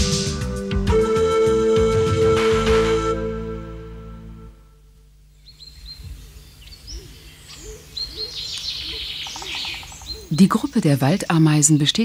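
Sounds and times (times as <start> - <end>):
low repeating note: 0.0 - 5.2
wild birds chirping: 5.2 - 12.0.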